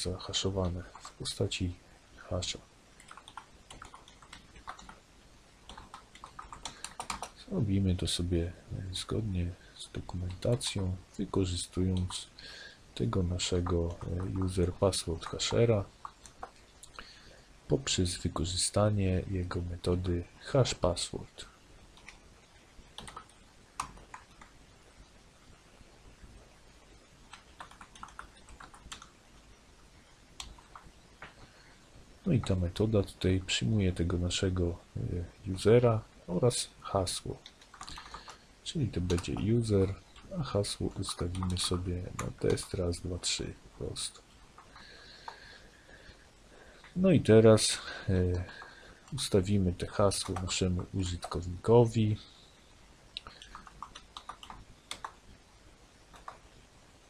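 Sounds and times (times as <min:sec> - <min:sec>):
computer keyboard typing: 0:00.8 - 0:01.2, 0:03.0 - 0:05.0, 0:05.6 - 0:07.4, 0:13.6 - 0:16.6, 0:21.9 - 0:22.2, 0:22.9 - 0:24.6, 0:27.3 - 0:29.2, 0:30.4 - 0:30.9, 0:37.4 - 0:38.4, 0:39.0 - 0:39.5, 0:40.1 - 0:42.8, 0:53.2 - 0:55.2, 0:56.1 - 0:56.4.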